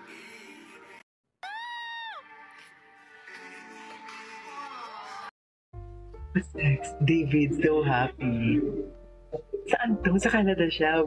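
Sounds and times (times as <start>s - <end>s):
drawn-out meow-like cry: 1.4s - 2.4s
faint music: 6.3s - 11.0s.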